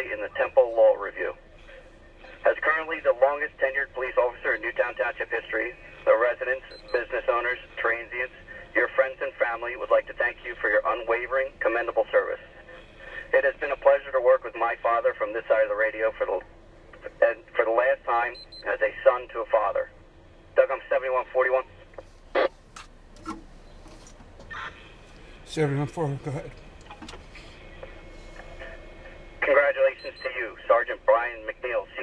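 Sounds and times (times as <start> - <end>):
dispatcher voice over radio: 0.0 - 1.4, 2.2 - 16.4, 17.0 - 20.0, 20.6 - 22.5, 25.5 - 26.6, 27.8 - 32.0.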